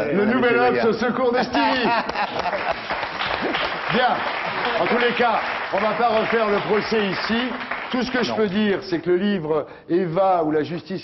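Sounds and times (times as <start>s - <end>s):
audience applauding: 1.7s - 8.8s.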